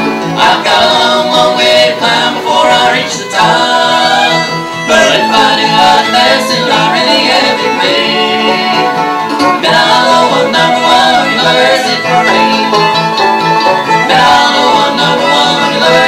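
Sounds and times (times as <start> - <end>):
acoustic guitar picking: 0.0 - 16.0
fiddle: 0.0 - 16.0
mandolin picking: 0.0 - 16.0.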